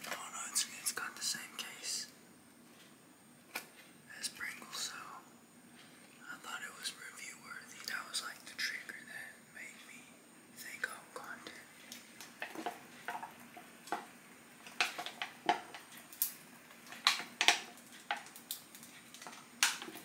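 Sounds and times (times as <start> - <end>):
man whispering: 0.0 - 2.2, 4.1 - 5.3, 6.2 - 11.8.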